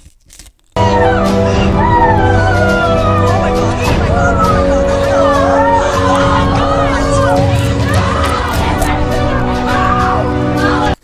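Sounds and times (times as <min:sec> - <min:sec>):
music track: 0:00.8 - 0:11.0
people shouting: 0:00.8 - 0:11.0.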